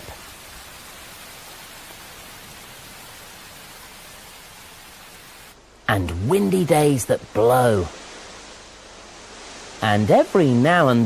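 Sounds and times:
steady rain hiss: 0:00.0 - 0:11.0.

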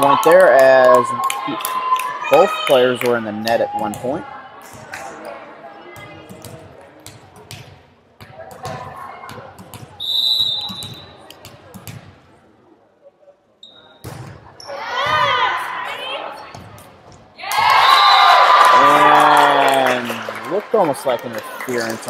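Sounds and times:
referee's whistle: 0:10.0 - 0:11.2, 0:17.8 - 0:18.4
volleyball bouncing on wooden floor: 0:10.6 - 0:12.1
players calling out: 0:17.4 - 0:20.9.

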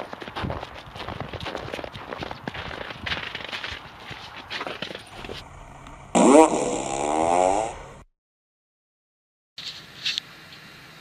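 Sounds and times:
fart sound effect: 0:05.2 - 0:08.1.

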